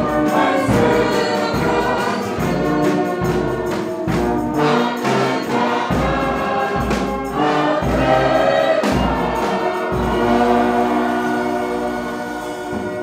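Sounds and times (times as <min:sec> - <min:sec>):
congregation singing a hymn: 0:00.0 - 0:13.0
instrumental accompaniment: 0:00.0 - 0:13.0.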